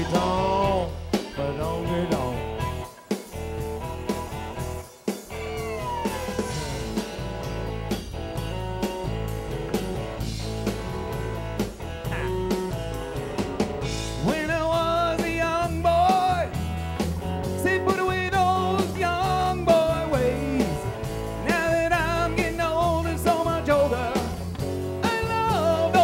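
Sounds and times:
country rock band playing: 0.0s - 26.0s
drum kit beat: 0.0s - 26.0s.

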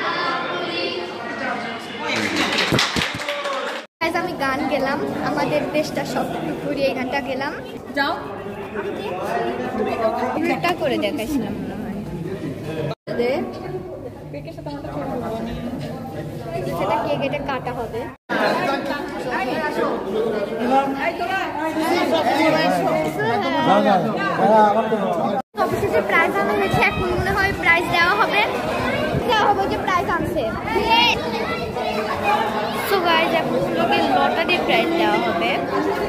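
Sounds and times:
many people talking in a hall: 0.0s - 36.0s.

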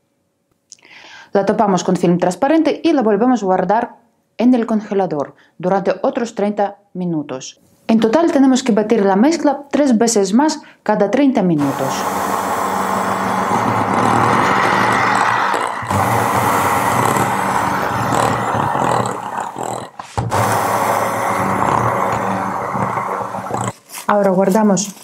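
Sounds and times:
electric hand mixer whirring: 11.6s - 23.8s.

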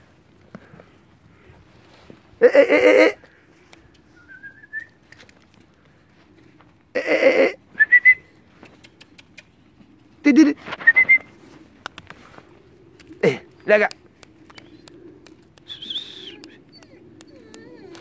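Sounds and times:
warbling whistles: 4.2s - 5.0s, 7.8s - 8.3s, 10.8s - 11.3s, 15.6s - 16.9s.

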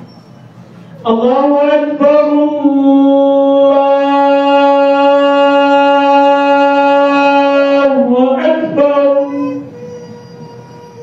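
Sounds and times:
call to prayer over loudspeaker: 1.0s - 9.8s.

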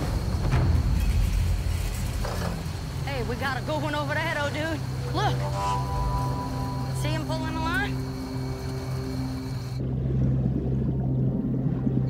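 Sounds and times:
boat motor rumbling: 0.0s - 12.0s.

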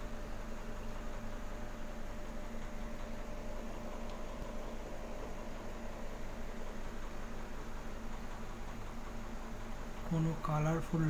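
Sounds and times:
aquarium air pump hum: 0.0s - 11.0s.

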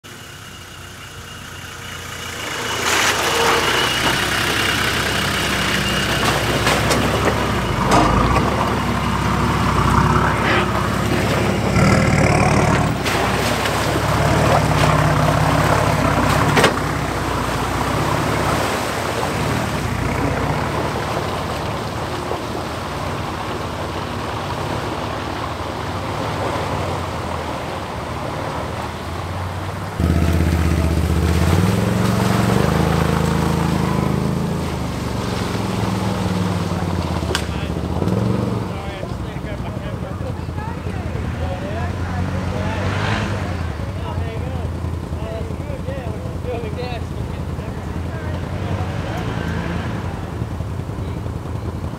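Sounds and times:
off-road vehicle engines: 0.0s - 51.9s
quad bike engine revving: 2.0s - 51.9s.

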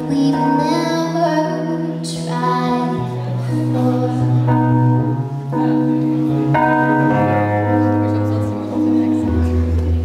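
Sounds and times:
sustained keyboard chords: 0.0s - 10.0s.

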